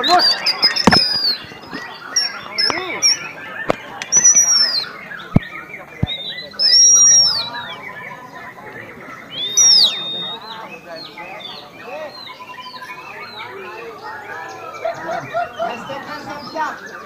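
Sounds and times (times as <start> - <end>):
crowd chatter: 0.0 - 17.0
songbirds singing: 0.0 - 17.0.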